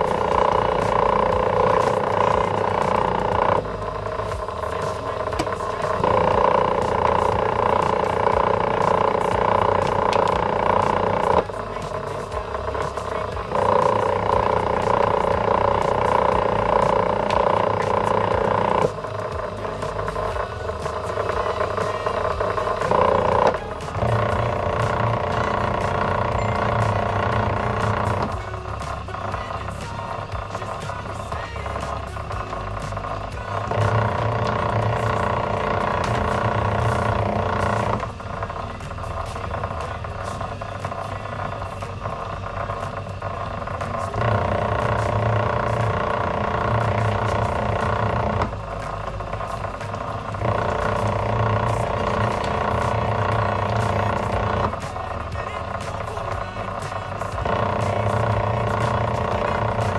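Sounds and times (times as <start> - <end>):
wire-stripping machine humming: 0.0 - 59.9.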